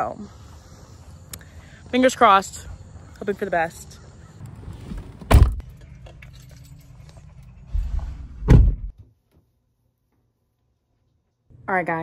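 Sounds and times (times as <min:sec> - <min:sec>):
dull thumps on phone microphone: 0:08.4 - 0:08.9.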